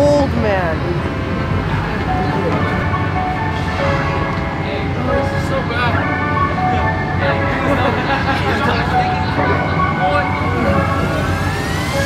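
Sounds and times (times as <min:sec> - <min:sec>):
crowd noise rumble: 0:00.0 - 0:12.0
faint jingly music: 0:02.1 - 0:12.0.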